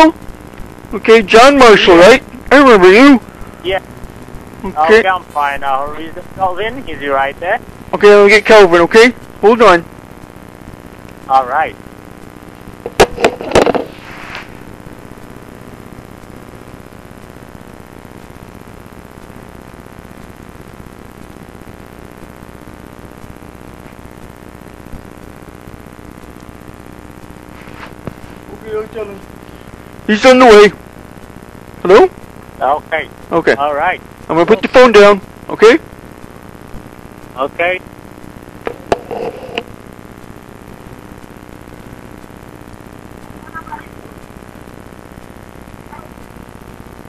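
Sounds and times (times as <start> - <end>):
telephone line hum and hiss: 0.0 - 47.0
faint voice: 43.3 - 44.2.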